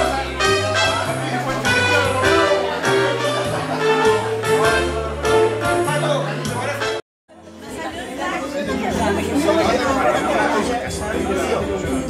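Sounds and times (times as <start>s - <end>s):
many people talking: 0.0s - 12.0s
music playing: 0.0s - 12.0s.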